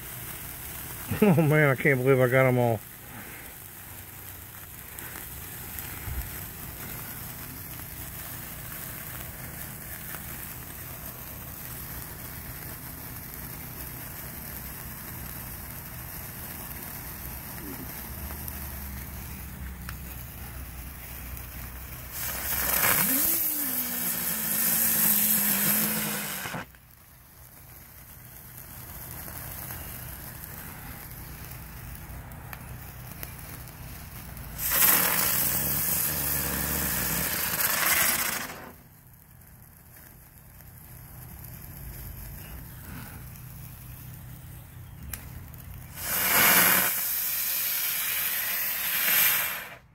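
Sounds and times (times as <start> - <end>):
fireworks hissing bursts: 0.0 - 49.9
low fizz of fireworks: 0.0 - 49.9.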